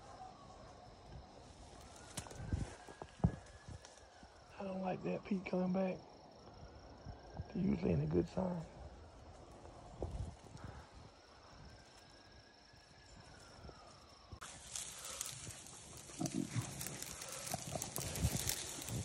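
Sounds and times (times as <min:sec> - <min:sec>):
faint insect tone: 0:00.0 - 0:19.0
dry brush rustling and crackling: 0:01.2 - 0:04.4, 0:11.6 - 0:19.0.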